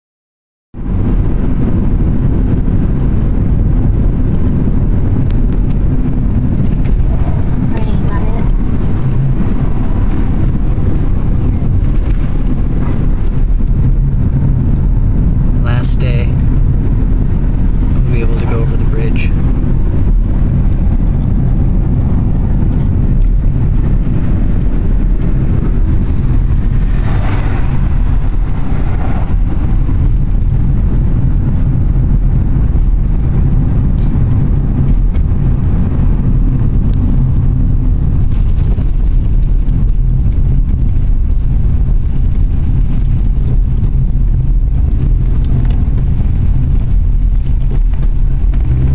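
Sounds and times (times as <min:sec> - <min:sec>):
car interior road rumble: 0:00.7 - 0:48.9.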